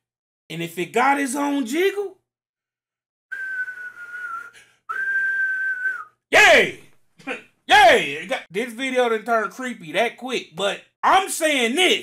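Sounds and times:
man whistling long notes: 3.3 - 6.2.

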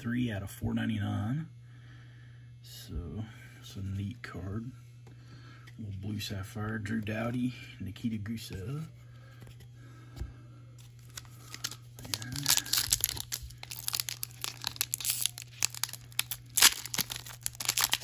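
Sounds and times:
foil wrapper crinkling and tearing: 10.8 - 18.0
sharp crackle of foil: 10.9 - 18.0.

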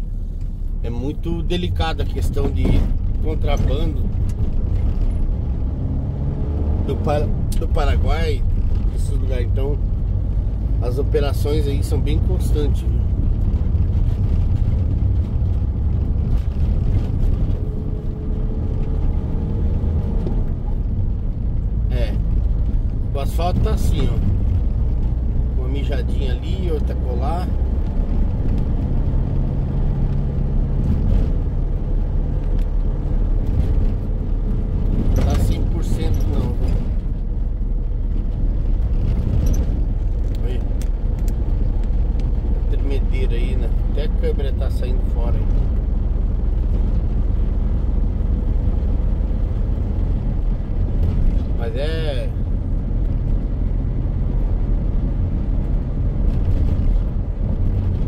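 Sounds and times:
van engine and tyre drone: 0.0 - 58.0.

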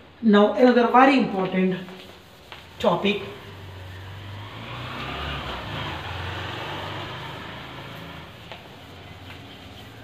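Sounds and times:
duster wiping chalkboard: 1.2 - 10.0.

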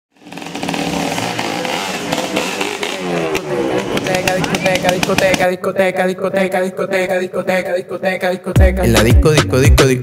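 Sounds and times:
engine-like revving: 0.1 - 5.5.

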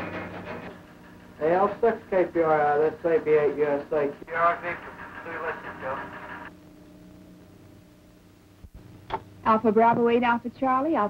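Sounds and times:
man speaking over radio: 2.8 - 6.2.

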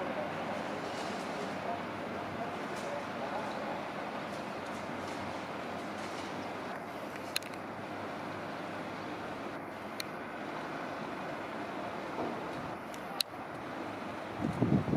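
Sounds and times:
electric train rumbling: 0.0 - 14.9.

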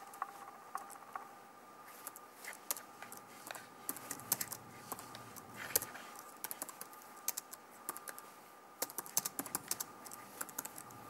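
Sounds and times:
faint high hum: 0.0 - 11.0
keyboard clicks: 3.9 - 8.2, 8.8 - 11.0.

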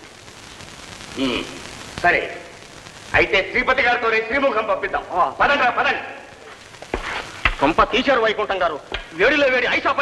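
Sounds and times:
film soundtrack hiss and crackle: 0.0 - 10.0
man speaking: 1.2 - 2.5, 7.6 - 10.0.

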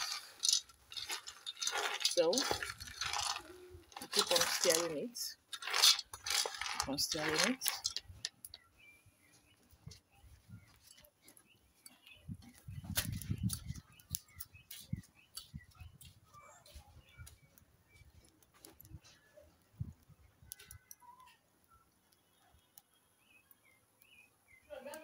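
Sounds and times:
kernels crackling and popping: 0.0 - 8.7
birds chirping: 0.0 - 25.0.

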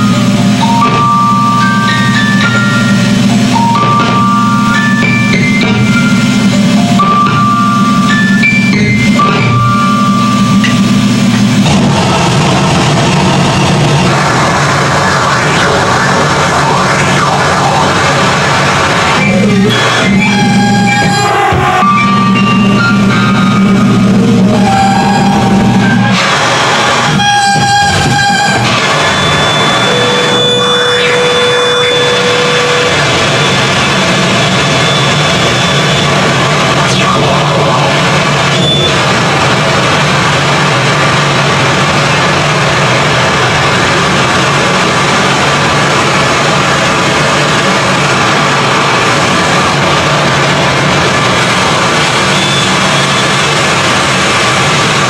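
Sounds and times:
high held tones: 0.0 - 54.8
distorted noise music: 0.0 - 55.0
low drone: 0.0 - 55.0.

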